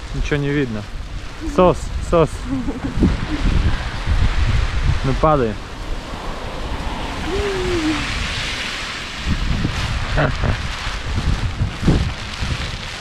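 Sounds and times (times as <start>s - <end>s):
heavy rain: 0.0s - 13.0s
wind buffeting microphone: 0.0s - 13.0s
brief voice-like sound: 7.3s - 8.1s.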